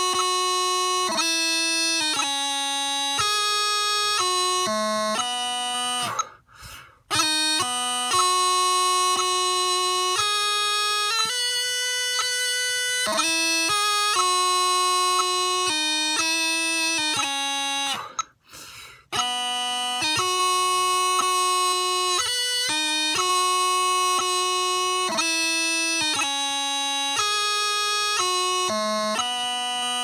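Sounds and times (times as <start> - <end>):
bagpipe chanter melody: 0.0 - 30.0.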